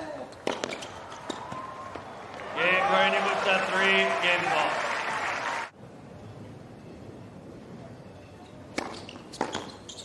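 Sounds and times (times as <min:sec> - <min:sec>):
racket striking tennis ball: 0:00.4 - 0:01.6
ball bouncing: 0:00.4 - 0:02.4.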